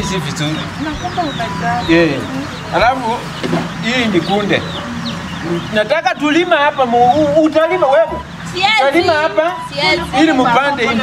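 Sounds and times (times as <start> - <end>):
chickens clucking: 0.0 - 11.0
voices: 0.0 - 11.0.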